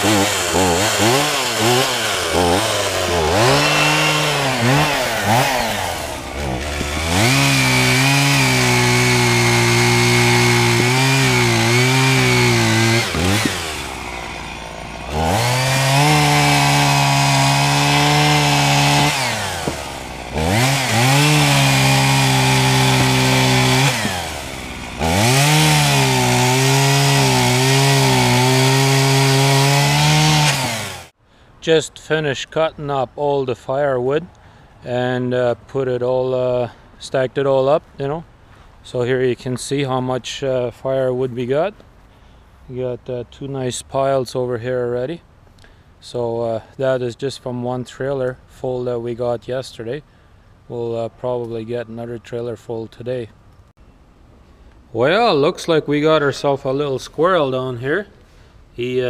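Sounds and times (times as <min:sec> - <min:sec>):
chainsaw cutting logs: 0:00.0 - 0:31.2.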